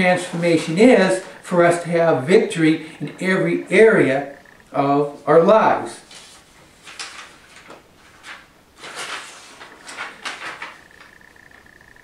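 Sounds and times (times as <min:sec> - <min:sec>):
paper rustling: 0:00.0 - 0:03.9, 0:06.0 - 0:11.1.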